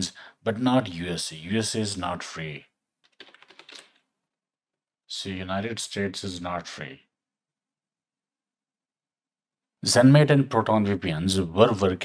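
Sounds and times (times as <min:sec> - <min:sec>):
computer keyboard keystrokes: 0:03.0 - 0:04.0.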